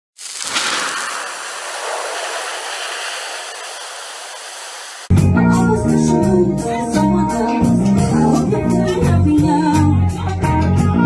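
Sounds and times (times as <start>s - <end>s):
hiss of noise: 0.2s - 5.1s.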